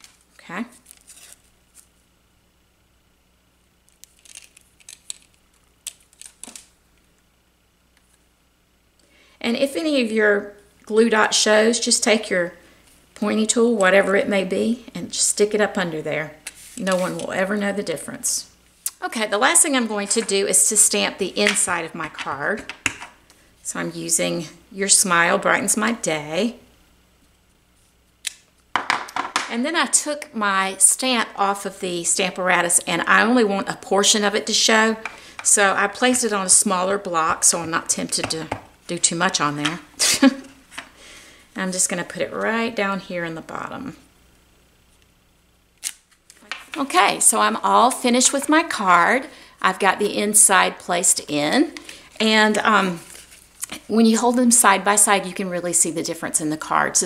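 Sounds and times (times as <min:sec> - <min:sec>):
paper rustling: 0:00.0 - 0:02.0, 0:04.0 - 0:06.7.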